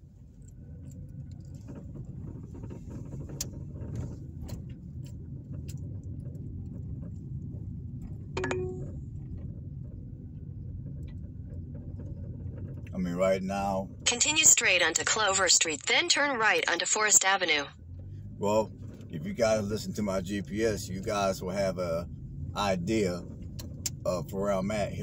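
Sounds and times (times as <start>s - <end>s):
car road and engine rumble: 0.0s - 25.0s
short tone: 8.4s - 9.0s.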